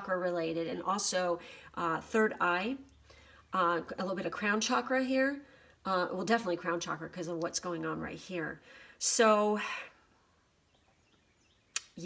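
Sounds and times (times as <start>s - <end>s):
sharp click: 11.8s - 12.0s.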